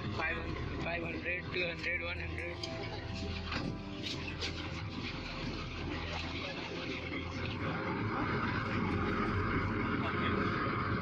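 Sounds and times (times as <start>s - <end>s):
faint passengers' voices: 0.0s - 11.0s
speedboat engines running: 0.0s - 11.0s.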